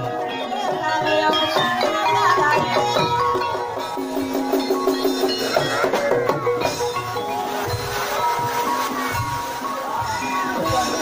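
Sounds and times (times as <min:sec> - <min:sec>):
low drum beats: 0:00.0 - 0:11.0.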